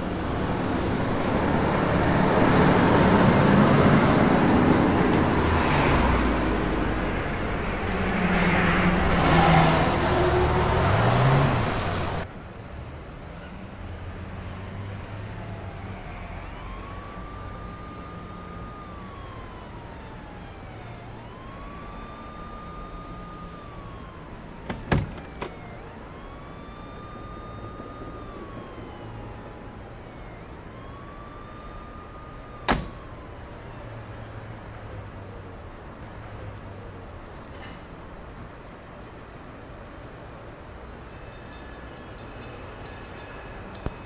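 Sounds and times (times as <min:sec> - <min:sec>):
distant siren wailing: 0:00.0 - 0:12.3, 0:14.7 - 0:35.2.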